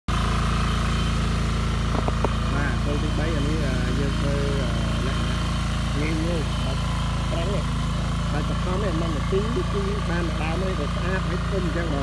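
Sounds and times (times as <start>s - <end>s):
tractor engine running: 0.1s - 12.0s.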